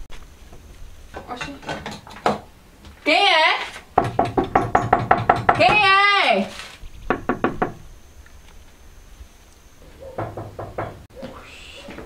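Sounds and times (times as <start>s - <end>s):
knuckles knocking on wooden door: 4.0s - 5.9s, 7.1s - 7.8s, 10.2s - 11.0s.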